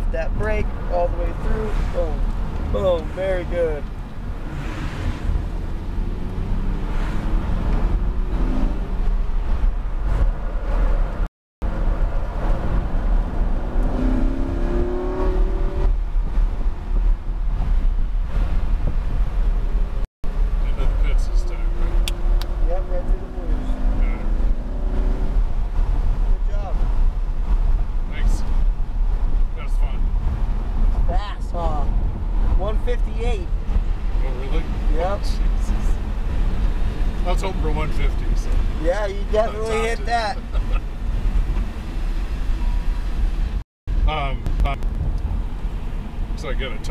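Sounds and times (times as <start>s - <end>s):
car engine rumbling from inside: 0.0s - 46.9s.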